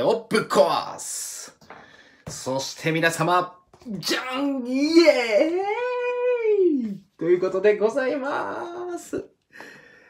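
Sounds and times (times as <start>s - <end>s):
man cheering: 4.0s - 7.0s.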